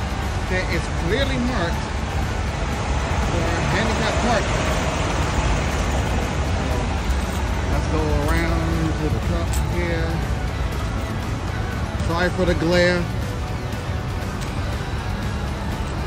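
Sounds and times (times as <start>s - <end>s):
diesel truck engines idling: 0.0s - 16.0s
faint voices: 6.4s - 11.2s.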